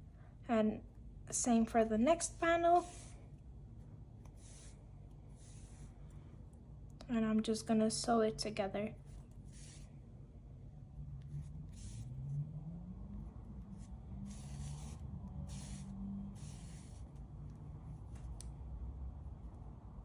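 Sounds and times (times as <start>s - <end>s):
yarn swishing through stitches: 2.2s - 3.2s, 11.0s - 18.1s.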